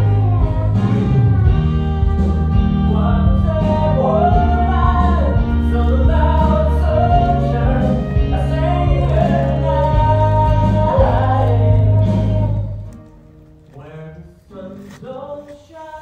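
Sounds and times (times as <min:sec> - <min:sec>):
person singing: 0:00.0 - 0:13.1
band accompaniment: 0:00.0 - 0:13.7.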